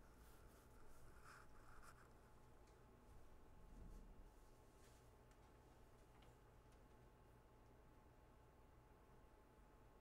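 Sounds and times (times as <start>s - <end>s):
pencil scratching on paper: 1.1s - 2.1s.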